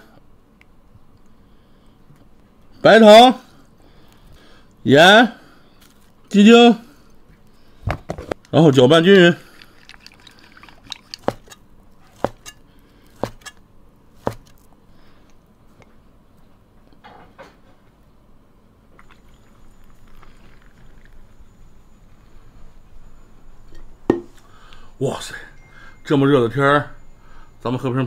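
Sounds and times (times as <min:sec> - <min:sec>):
faint handling sounds: 0:05.7 - 0:06.4.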